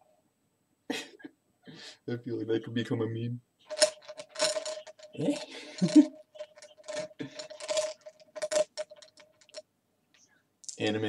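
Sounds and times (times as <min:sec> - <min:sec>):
man laughing breathily: 0:05.3 - 0:06.2.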